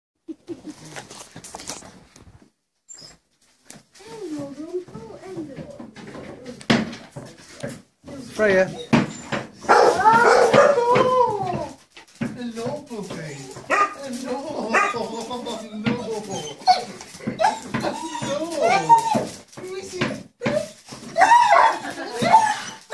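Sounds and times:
dog crying and whining: 2.9 - 3.3, 8.4 - 12.0, 13.1 - 22.9.

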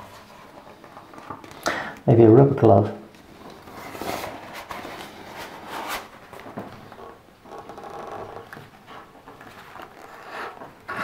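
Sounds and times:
rubber glove rustling and rubbing: 0.0 - 1.4, 3.2 - 11.0.

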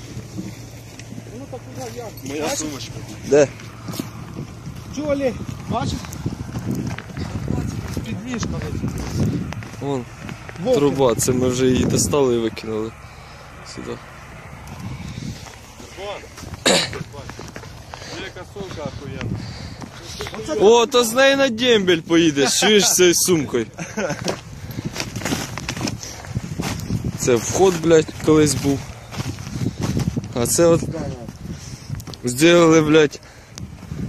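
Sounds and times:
wind on microphone: 2.8 - 13.0, 14.0 - 20.6, 24.0 - 34.0
man coughing: 16.6 - 17.1.

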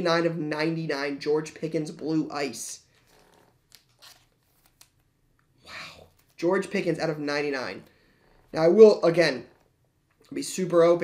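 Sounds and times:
trading cards rustling: 2.9 - 5.1, 6.0 - 6.8.

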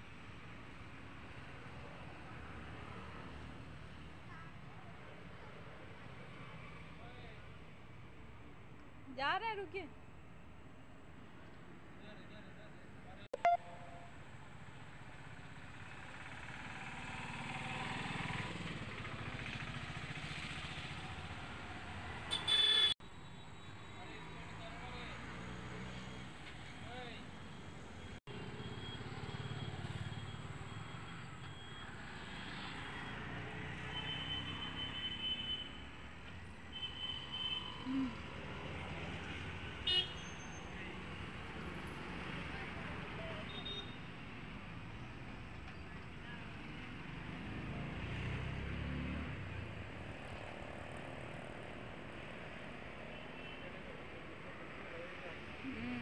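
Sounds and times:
short high toots: 13.4 - 14.2.

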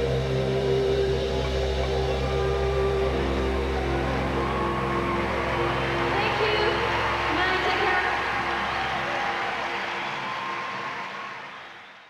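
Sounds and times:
ambient electronic music: 0.0 - 12.0.

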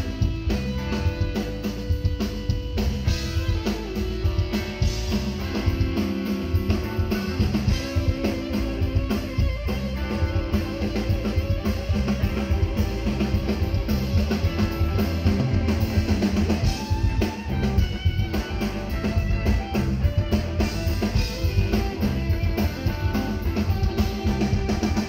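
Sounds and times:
drum kit groove: 0.0 - 25.0
electric guitar solo: 0.0 - 25.0.

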